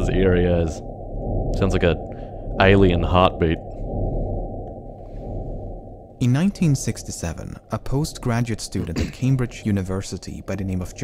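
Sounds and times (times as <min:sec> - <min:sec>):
muffled low pulsing: 0:00.0 - 0:11.0.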